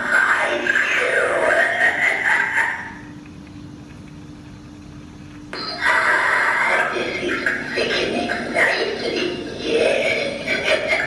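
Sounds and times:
steady low hum: 0.0s - 11.0s
recorded prop voice talking: 5.8s - 11.0s.

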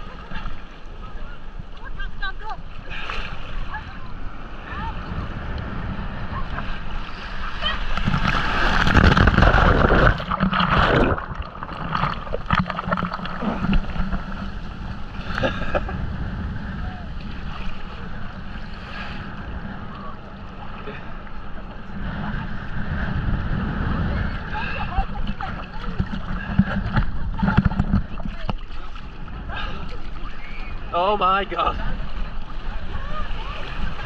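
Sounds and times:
wave breaking and foaming: 0.0s - 34.0s
water splashing against camera: 5.6s - 15.9s, 19.8s - 34.0s.

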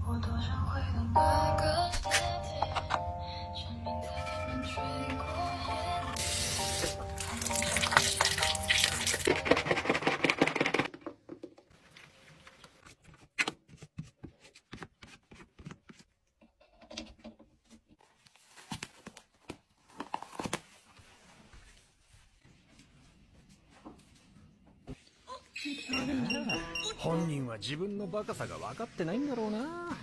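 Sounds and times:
background music: 0.0s - 10.9s
electric toothbrush brushing teeth: 6.1s - 9.4s.

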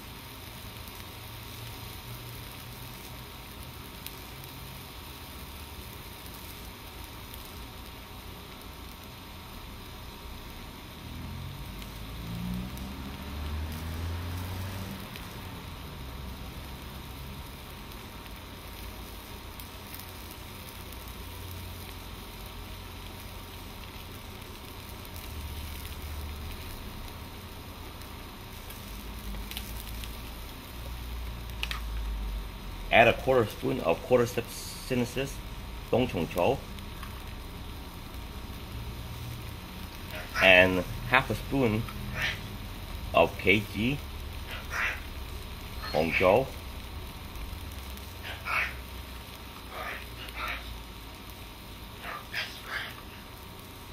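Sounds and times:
food sizzling in a wok: 0.0s - 53.9s.

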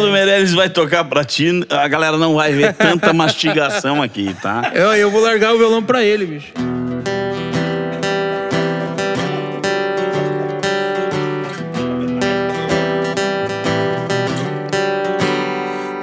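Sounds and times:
acoustic guitar strumming chords: 6.5s - 16.0s.

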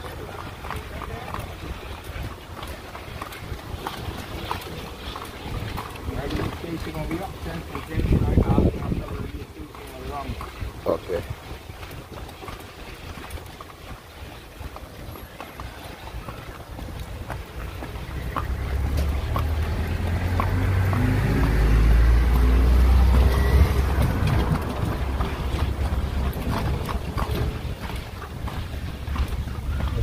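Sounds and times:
motor vehicle rumble: 0.0s - 30.0s.

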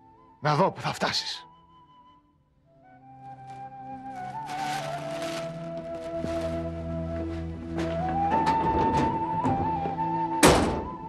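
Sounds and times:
door slamming shut: 10.4s - 11.0s.

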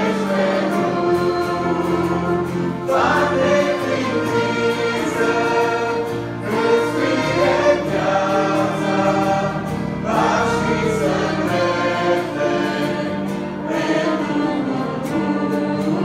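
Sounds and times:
choir singing a hymn: 0.0s - 16.0s.

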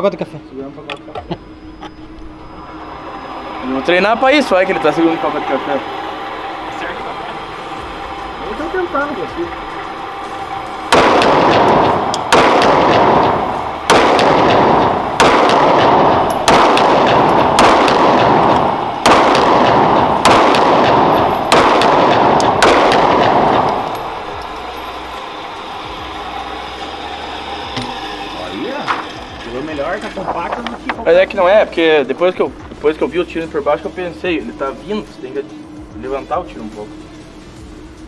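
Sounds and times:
pistol shots echoing indoors: 10.9s - 24.7s.

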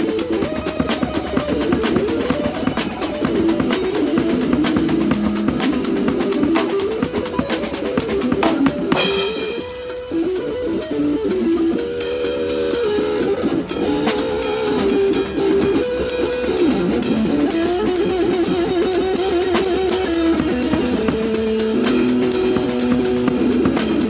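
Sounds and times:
cymbals: 0.0s - 24.0s
electric guitar blues-rock lead: 0.0s - 24.0s.

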